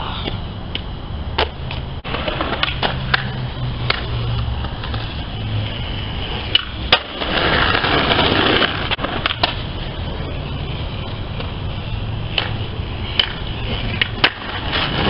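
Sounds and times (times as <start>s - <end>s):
skateboard wheels rolling on concrete: 0.0s - 15.0s
skateboard clacking on ground: 0.2s - 15.0s.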